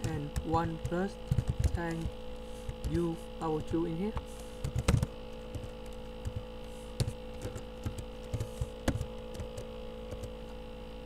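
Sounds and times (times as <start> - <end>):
computer keys and mouse clicking: 0.0 - 10.4
electrical mains hum: 0.0 - 11.0.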